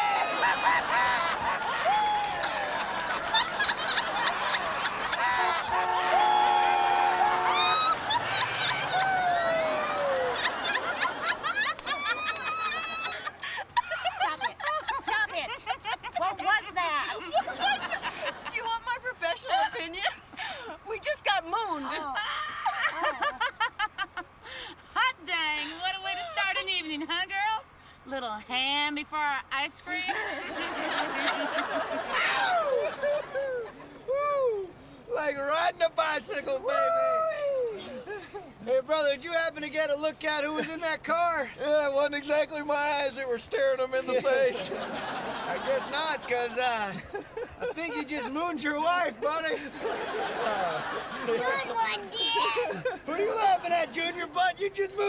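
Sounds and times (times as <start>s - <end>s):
people laughing and whooping: 0.0s - 21.0s, 21.6s - 24.6s, 30.1s - 35.0s, 36.4s - 38.7s, 43.9s - 55.0s.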